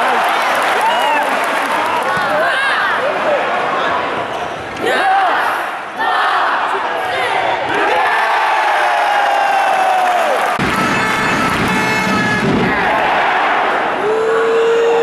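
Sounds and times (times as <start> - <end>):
crowd din in an arena: 0.0 - 15.0
fans shouting: 0.0 - 15.0.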